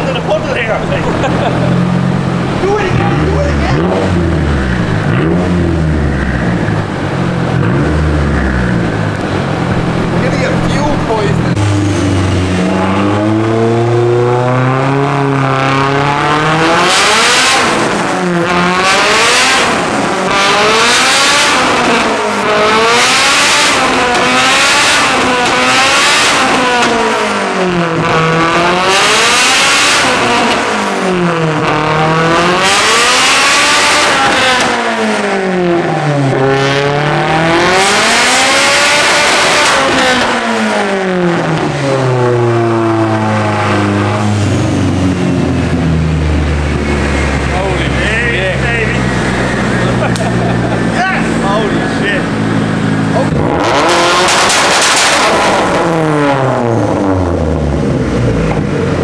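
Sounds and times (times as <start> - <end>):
loud rushing noise: 0.1 - 14.7, 36.7 - 56.2
engine revving on a dyno: 0.5 - 59.0.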